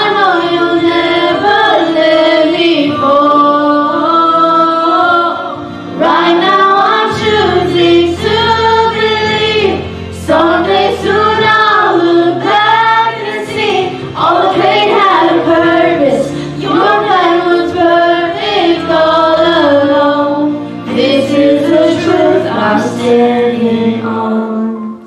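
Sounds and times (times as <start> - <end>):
choir singing in harmony: 0.0 - 25.0.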